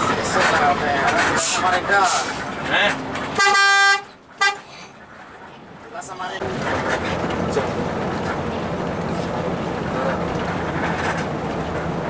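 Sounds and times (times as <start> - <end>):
bus horn blast: 3.3 - 4.7.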